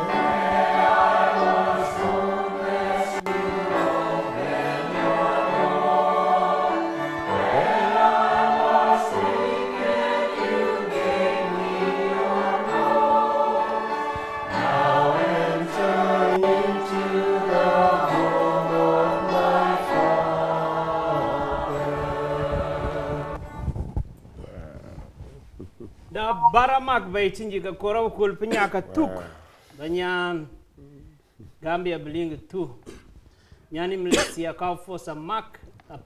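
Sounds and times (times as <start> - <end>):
choir singing slow song: 0.0 - 23.6.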